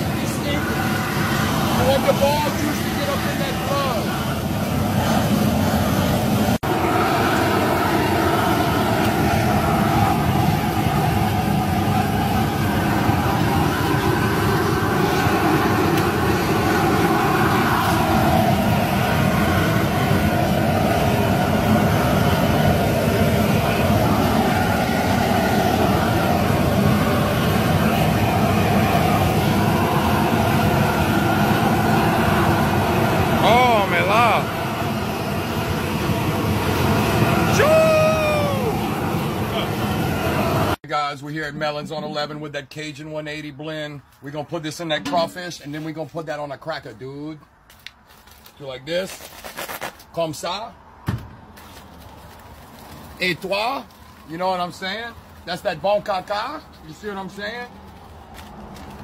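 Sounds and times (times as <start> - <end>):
gas burner roaring: 0.0 - 46.6, 47.8 - 59.0
water at a rolling boil: 0.0 - 59.0.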